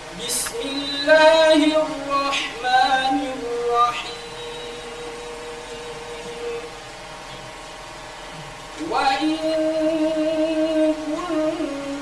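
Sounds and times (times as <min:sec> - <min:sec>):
background hiss and hum: 0:00.0 - 0:12.0.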